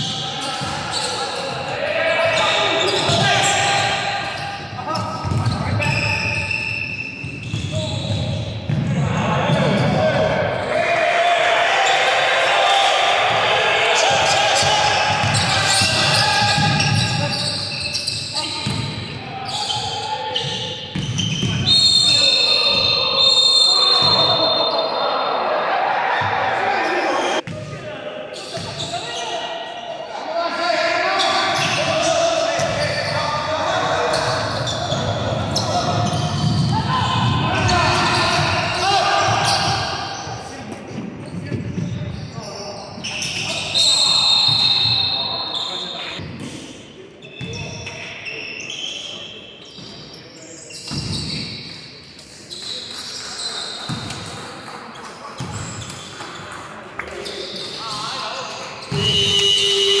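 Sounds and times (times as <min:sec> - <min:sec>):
voices echoing in hall: 0:00.0 - 1:00.0.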